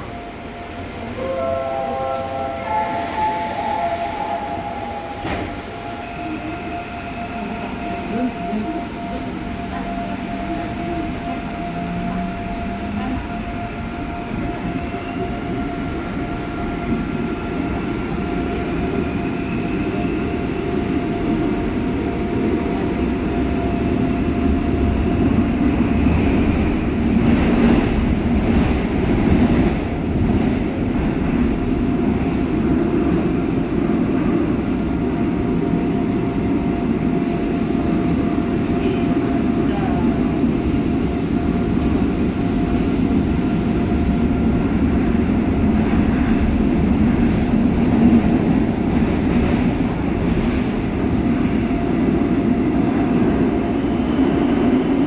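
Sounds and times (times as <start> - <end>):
train rumble: 0.0 - 55.0
train doors shutting: 1.2 - 13.2.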